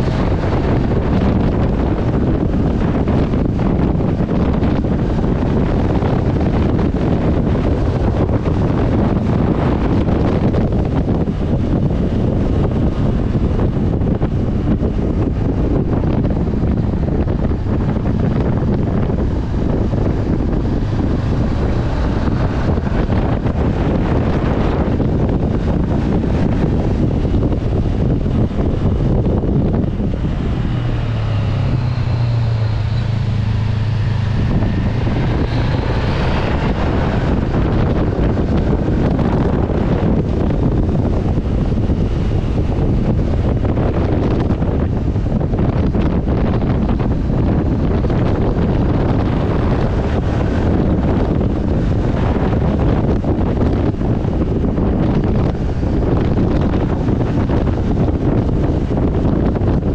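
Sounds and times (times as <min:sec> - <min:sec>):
motorcycle engine: 0:00.0 - 0:59.9
wind rushing over microphone: 0:00.0 - 0:59.9.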